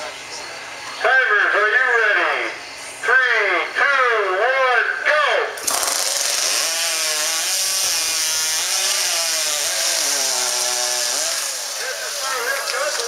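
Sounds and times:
chainsaws cutting logs: 5.6 - 13.0.

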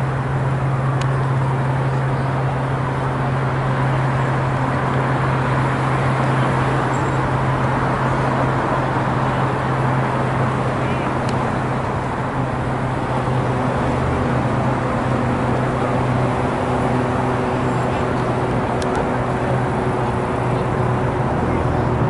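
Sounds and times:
urban traffic rush: 0.0 - 22.0.

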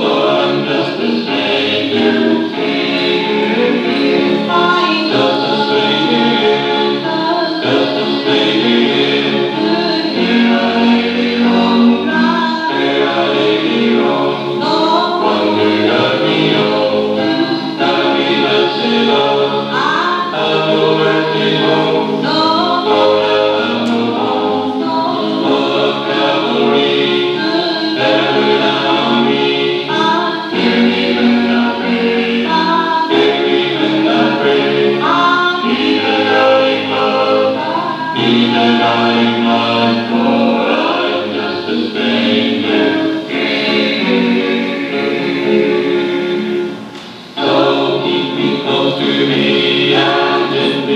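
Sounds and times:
choir singing gospel: 0.0 - 50.9.

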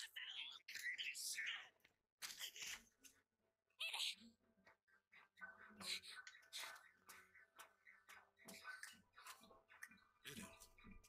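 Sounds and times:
faint whispery voices: 0.0 - 11.0.

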